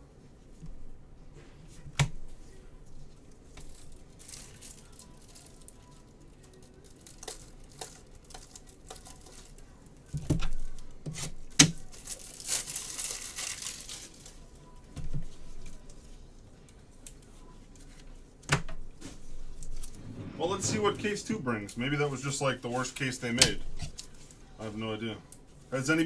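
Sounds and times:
plastic wrap crinkling: 0:03.6 - 0:09.8, 0:10.5 - 0:14.8.

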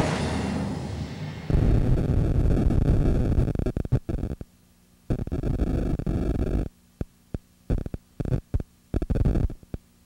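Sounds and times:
electrical mains hum: 0:00.0 - 0:10.0
short bursts of noise: 0:01.5 - 0:09.9.

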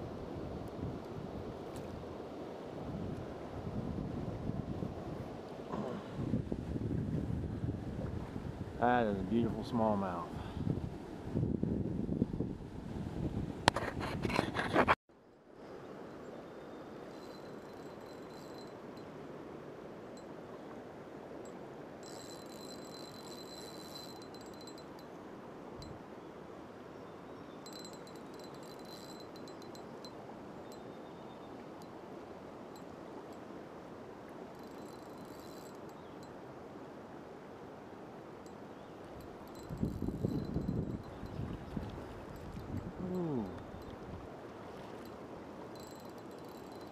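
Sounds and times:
wind noise: 0:00.0 - 0:15.0, 0:39.1 - 0:45.1
high-pitched ringing: 0:17.1 - 0:19.1, 0:22.0 - 0:25.1, 0:27.6 - 0:30.8, 0:34.6 - 0:36.3, 0:39.2 - 0:41.4, 0:45.8 - 0:46.9
river water rushing: 0:41.4 - 0:46.8.

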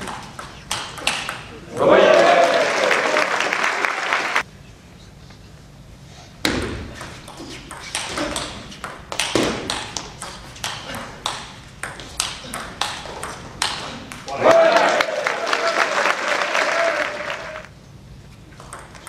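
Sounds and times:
table tennis ball clicks: 0:00.0 - 0:01.5
audience noise: 0:01.7 - 0:04.4, 0:14.3 - 0:17.7.

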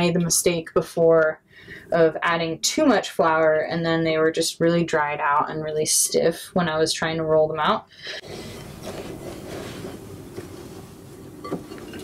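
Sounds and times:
hands kneading dough: 0:08.2 - 0:12.0.

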